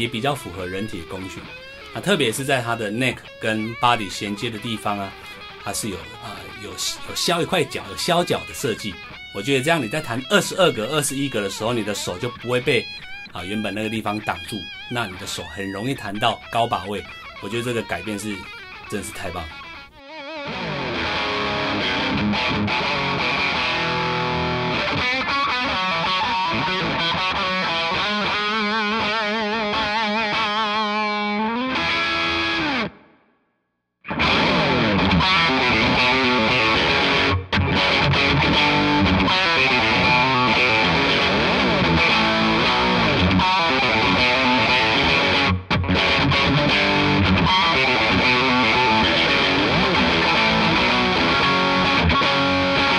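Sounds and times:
distorted electric guitar lead: 0.0 - 33.1, 34.1 - 52.9
distorted electric guitar rock music: 0.0 - 33.1, 34.1 - 52.9.

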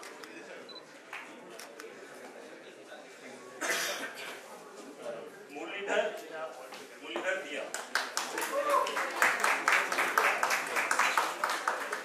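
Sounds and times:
faint murmuring voices: 0.0 - 12.0
person coughing: 3.6 - 4.2.

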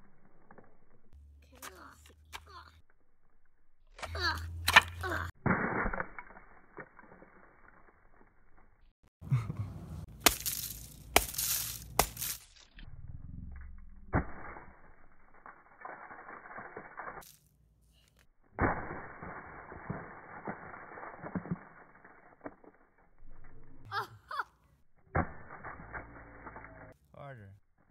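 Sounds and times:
sledgehammer blows on concrete: 10.0 - 12.6
gingerbread cracking and crunching: 10.1 - 12.7, 14.2 - 18.1.

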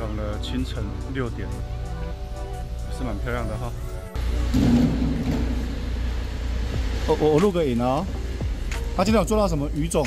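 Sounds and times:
low rumble: 4.2 - 7.3.

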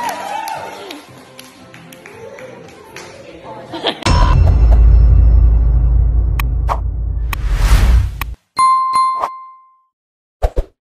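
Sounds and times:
bell-like ding: 8.6 - 9.9.

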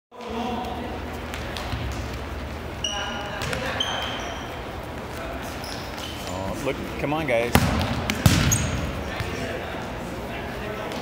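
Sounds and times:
sneakers squeaking on floor: 0.2 - 6.7, 7.6 - 9.5.

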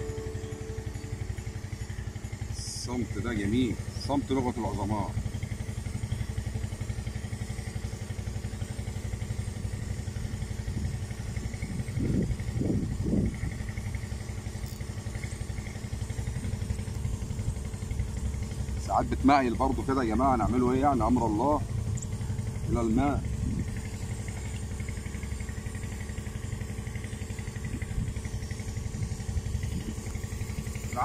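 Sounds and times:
small engine running: 0.0 - 31.0.

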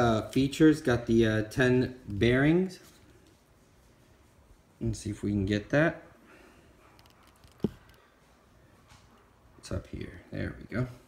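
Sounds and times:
handling noise with light clicks: 6.8 - 9.7.

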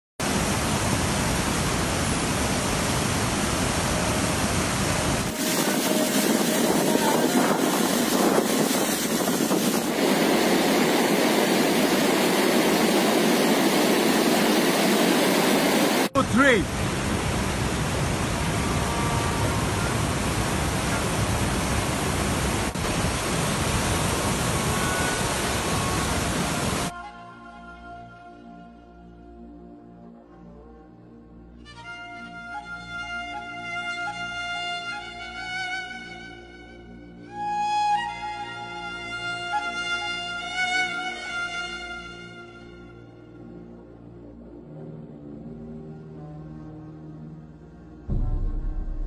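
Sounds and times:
stream rushing over rocks: 0.2 - 26.9.

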